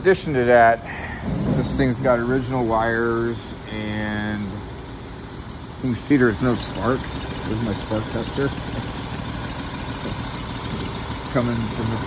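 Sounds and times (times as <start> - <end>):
car engine idling with misfire: 0.0 - 12.0.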